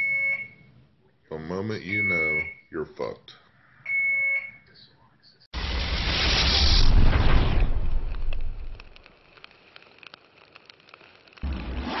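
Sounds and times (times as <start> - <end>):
fire rumble: 5.6 - 11.8
fire crackles: 5.6 - 11.9.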